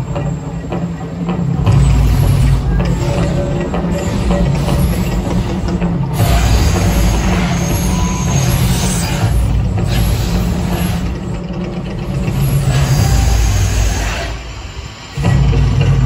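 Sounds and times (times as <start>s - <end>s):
whooshing bursts of gas fire jets: 1.8s - 16.0s.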